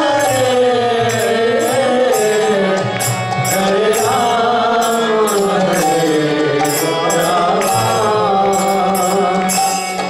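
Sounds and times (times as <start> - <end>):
person chanting: 0.0 - 9.8
hand drum: 0.0 - 10.0
harmonium chords: 0.0 - 10.0
small hand cymbals clashing: 1.1 - 10.0.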